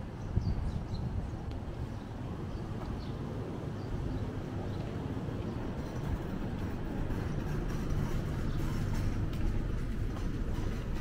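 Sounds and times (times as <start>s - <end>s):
low rumble of urban noise: 0.0s - 11.0s.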